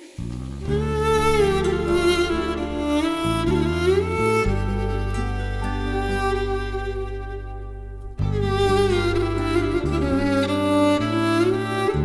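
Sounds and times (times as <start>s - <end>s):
sustained bass guitar notes: 0.2s - 12.0s
violin playing sliding melody: 0.6s - 12.0s.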